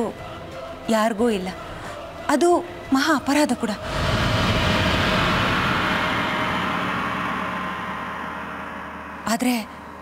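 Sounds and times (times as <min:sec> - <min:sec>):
low steady drone: 0:01.6 - 0:10.0
dramatic whooshing noise: 0:03.8 - 0:10.0.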